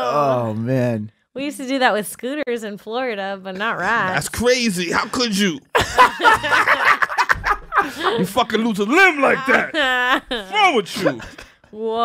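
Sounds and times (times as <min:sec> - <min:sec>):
person speaking: 0:03.5 - 0:06.9, 0:07.8 - 0:11.4
people laughing: 0:03.7 - 0:11.6.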